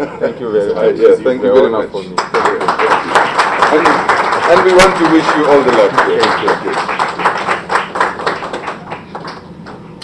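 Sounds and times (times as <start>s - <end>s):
small group clapping: 2.1s - 9.9s.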